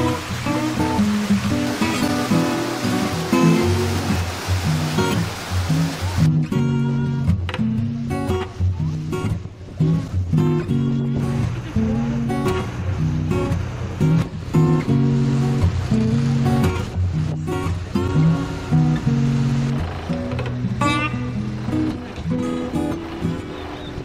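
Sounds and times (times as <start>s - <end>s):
strummed acoustic guitar chords: 0.0s - 24.0s.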